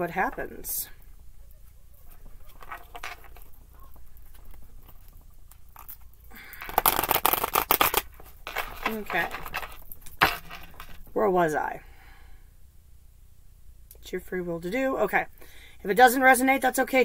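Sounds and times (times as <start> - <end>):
tarot cards being shuffled: 1.8 - 11.2.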